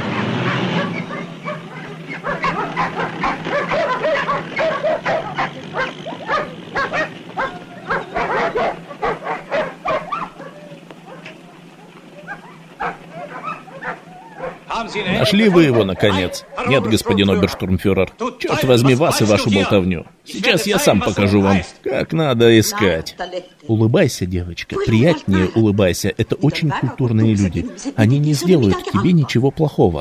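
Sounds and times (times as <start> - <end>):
dogs barking: 0.0 - 19.7, 24.8 - 29.8.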